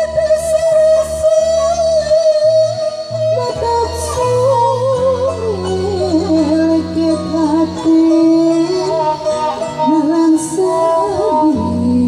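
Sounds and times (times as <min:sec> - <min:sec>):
plucked zither notes: 0:00.0 - 0:12.0
violin accompaniment: 0:00.0 - 0:12.0
woman singing ornamented melody: 0:00.0 - 0:12.0.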